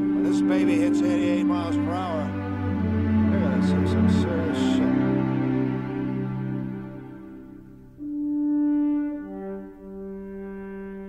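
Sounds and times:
orchestral music with horn: 0:00.0 - 0:11.0.

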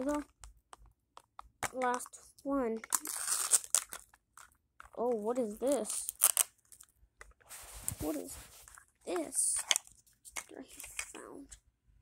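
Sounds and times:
plastic wrapping crinkling and tearing: 0:02.8 - 0:04.6, 0:05.8 - 0:06.9.

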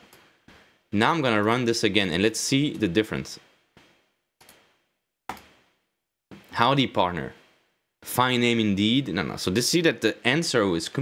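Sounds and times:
computer mouse clicks: 0:04.4 - 0:04.6, 0:05.3 - 0:05.5.

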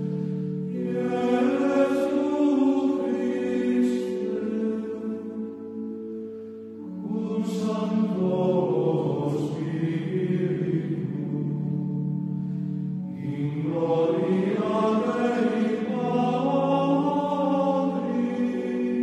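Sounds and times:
choir chanting: 0:00.0 - 0:05.9, 0:07.0 - 0:11.8, 0:13.1 - 0:19.0.

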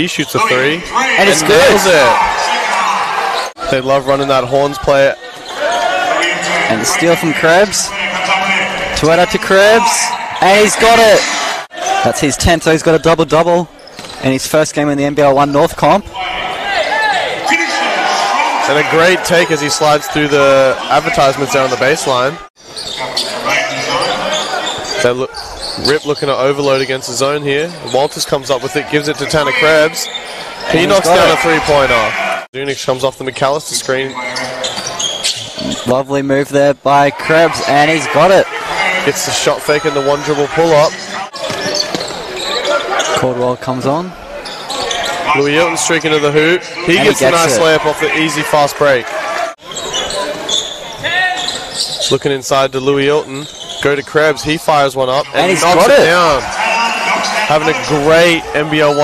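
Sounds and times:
indistinct voices: 0:00.0 - 0:13.0, 0:36.8 - 0:59.0
sneaker squeaks: 0:01.2 - 0:03.8, 0:05.3 - 0:07.0, 0:13.8 - 0:14.4, 0:22.6 - 0:28.3, 0:29.6 - 0:32.4, 0:33.9 - 0:35.9, 0:39.6 - 0:43.3, 0:44.3 - 0:45.3, 0:49.4 - 0:54.4.

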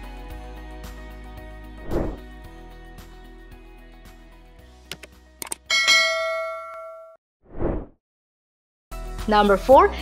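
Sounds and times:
short whoosh: 0:01.8 - 0:02.2, 0:07.5 - 0:07.9
mouse clicks: 0:04.9 - 0:05.6
notification bell ding: 0:05.7 - 0:07.2
faint background music: 0:09.0 - 0:10.0.

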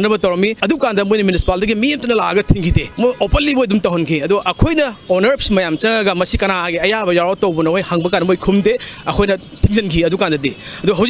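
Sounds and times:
man talking quickly: 0:00.0 - 0:11.0.

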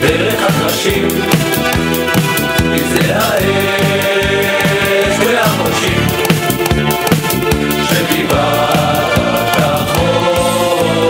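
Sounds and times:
mixed choir singing: 0:00.0 - 0:01.9, 0:03.0 - 0:11.0
instrumental accompaniment with beat: 0:00.0 - 0:11.0.

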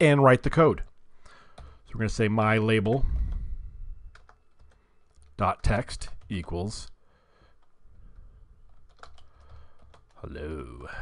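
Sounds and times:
typing on computer keyboard: 0:08.6 - 0:10.3.

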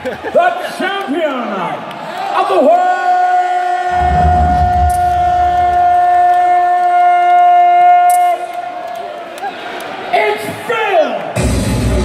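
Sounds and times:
crowd: 0:00.0 - 0:12.0
deep boom: 0:03.9 - 0:06.5.

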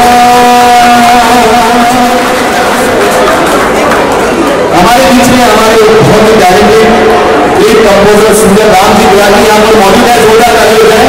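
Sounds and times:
man singing a long note: 0:00.0 - 0:02.6.

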